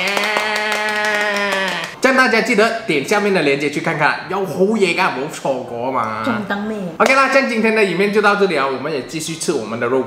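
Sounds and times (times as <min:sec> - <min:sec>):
hands clapping: 0:00.0 - 0:02.0
person cheering yay: 0:00.0 - 0:02.0.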